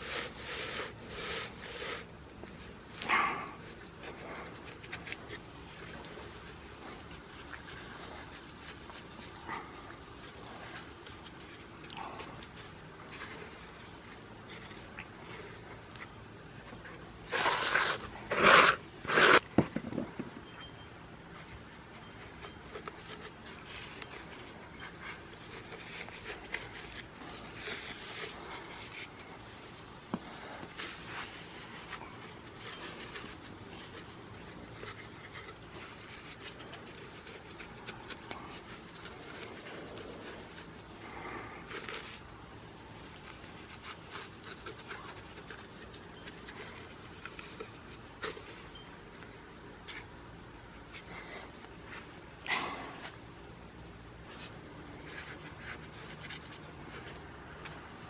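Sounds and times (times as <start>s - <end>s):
hand smoothing wet mortar: 0.0s - 2.1s, 17.2s - 19.5s.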